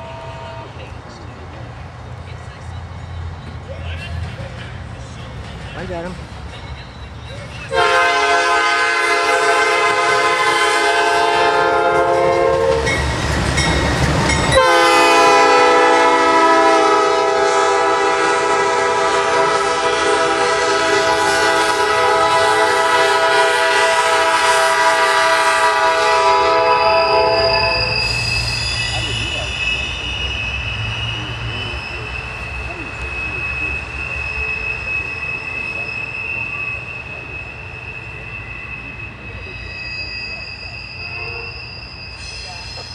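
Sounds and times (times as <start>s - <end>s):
train air horn blasts: 0.0s - 0.8s, 7.7s - 13.0s, 14.5s - 28.2s, 39.7s - 41.7s
train wheel squeal: 0.0s - 42.9s.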